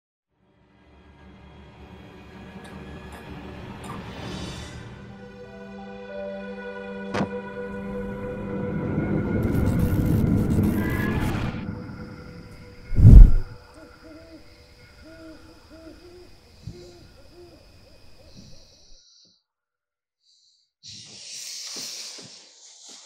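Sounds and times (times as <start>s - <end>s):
loud low boom: 12.9s - 13.6s
short owl-like hoots: 13.4s - 18.8s.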